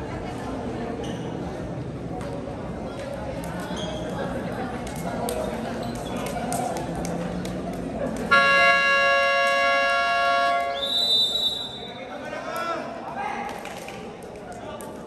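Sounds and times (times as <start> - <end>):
crowd chatter in a gym: 0.0 - 15.0
referee's whistle blast: 10.4 - 12.0.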